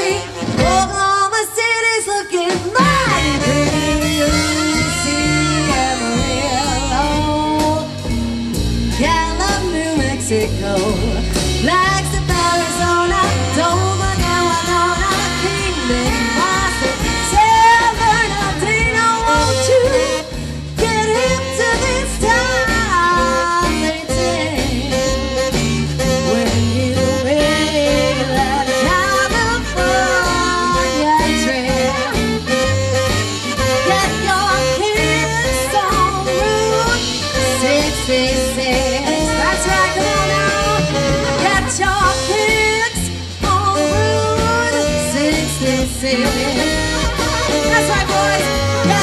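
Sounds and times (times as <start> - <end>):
woman singing: 0.0 - 8.1, 8.9 - 49.0
swing band playing: 0.0 - 49.0.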